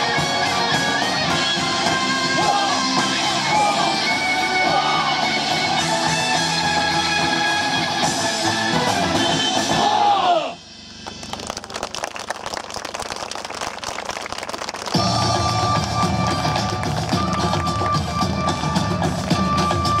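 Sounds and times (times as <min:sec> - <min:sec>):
guitar-led music over loudspeakers: 0:00.0 - 0:10.1, 0:15.0 - 0:20.0
drums: 0:00.0 - 0:11.4, 0:14.9 - 0:20.0.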